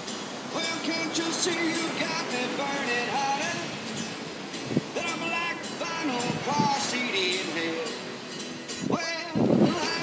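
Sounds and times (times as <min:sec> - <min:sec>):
breaking surf: 0:00.0 - 0:10.0
wind: 0:00.0 - 0:10.0.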